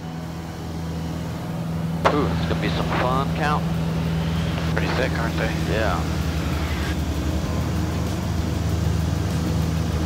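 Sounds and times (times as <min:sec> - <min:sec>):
light aircraft engine droning: 0:00.0 - 0:10.0.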